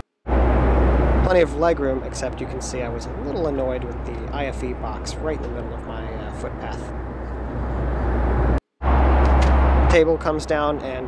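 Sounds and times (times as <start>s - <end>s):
airliner cabin drone: 0.0s - 11.0s.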